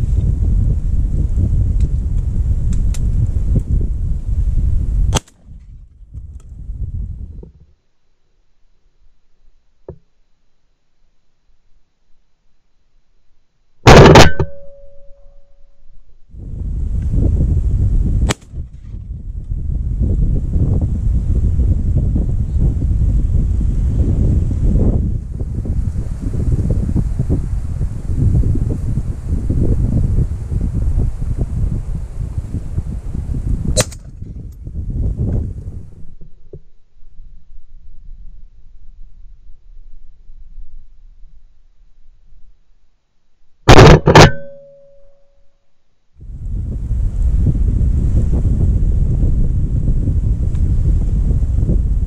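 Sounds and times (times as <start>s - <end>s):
wind buffeting microphone: 0.0s - 7.6s, 16.3s - 36.3s, 46.2s - 52.0s
shotgun shot: 5.1s - 5.4s, 13.9s - 14.8s, 18.2s - 18.6s, 33.8s - 34.1s, 43.7s - 44.7s
sharp clicks: 33.8s - 34.1s.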